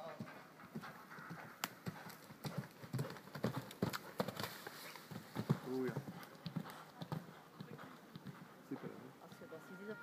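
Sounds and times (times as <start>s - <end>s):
horse hoofbeats on dirt: 0.0s - 9.4s.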